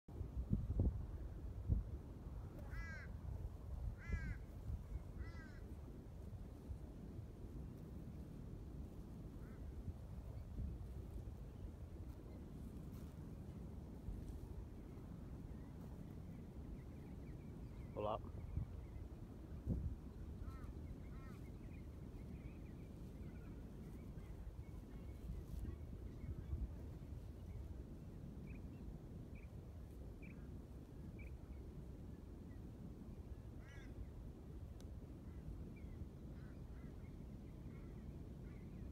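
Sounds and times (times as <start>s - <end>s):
wind rumbling on microphone: 0.1s - 38.9s.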